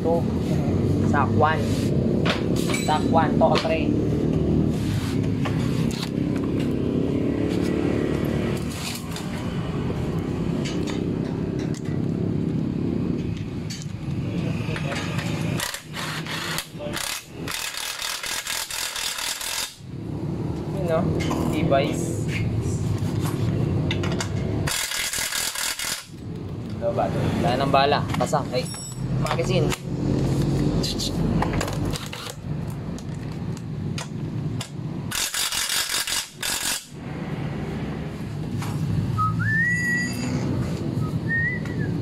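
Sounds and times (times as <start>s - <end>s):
impact wrench rattling bursts: 15.2s - 19.9s, 24.2s - 26.2s, 34.7s - 37.0s.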